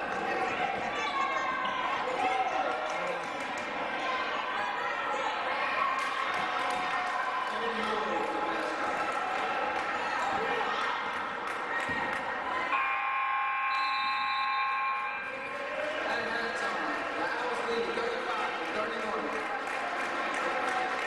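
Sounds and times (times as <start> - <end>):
spectators talking: 0.0 - 21.0.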